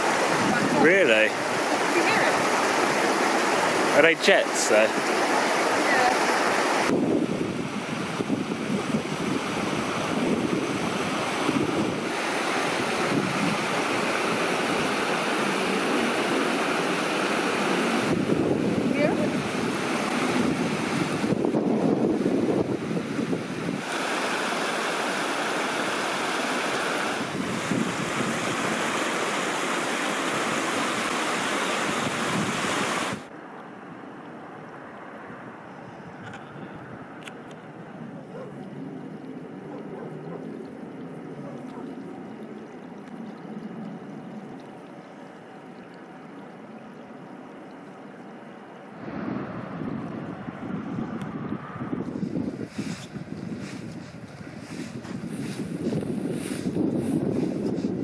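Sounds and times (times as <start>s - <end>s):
wind buffeting microphone: 0.0s - 4.0s, 6.8s - 16.8s, 17.5s - 24.1s, 27.1s - 29.1s, 31.8s - 33.3s, 49.0s - 58.0s
stream rushing over stones: 0.0s - 33.4s.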